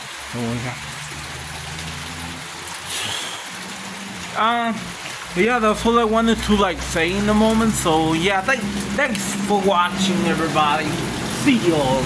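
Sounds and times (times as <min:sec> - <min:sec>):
rain hissing: 0:00.0 - 0:12.0.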